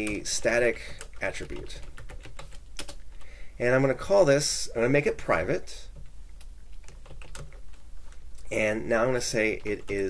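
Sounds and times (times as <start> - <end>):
keyboard typing: 0.0 - 3.4, 5.9 - 8.4.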